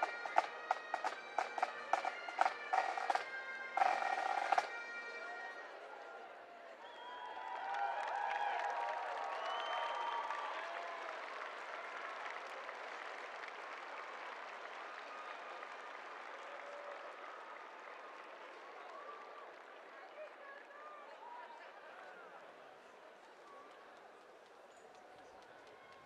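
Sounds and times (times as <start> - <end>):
crowd cheering and applauding: 0.0 - 21.7
shouts and whoops: 6.1 - 11.3.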